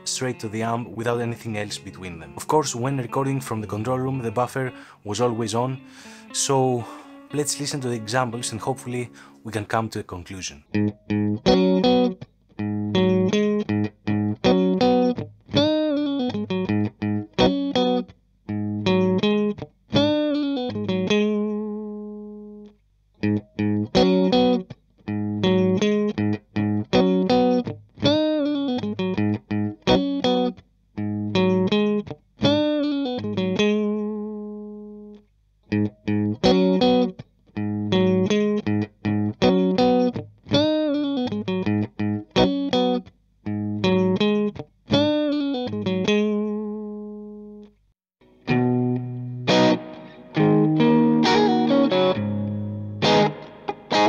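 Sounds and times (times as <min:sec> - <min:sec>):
clean electric guitar: 0:00.0 - 0:10.0, 0:10.7 - 0:54.0.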